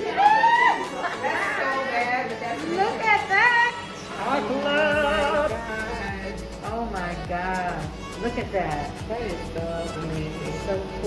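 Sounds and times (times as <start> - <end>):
indistinct voices talking: 0.0 - 11.0
long drawn-out vocal sound: 4.1 - 8.3.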